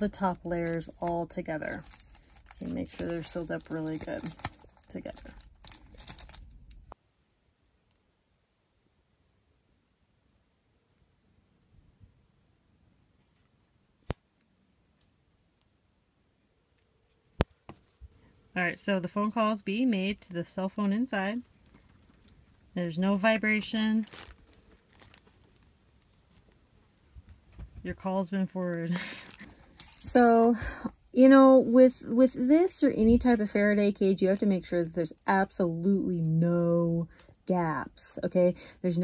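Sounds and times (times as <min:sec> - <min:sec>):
foil pouch crinkling: 0:00.0 - 0:07.0, 0:20.2 - 0:26.8.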